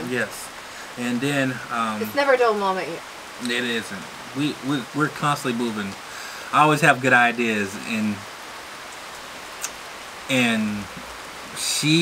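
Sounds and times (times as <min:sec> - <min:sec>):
steady rain: 0:00.0 - 0:12.0.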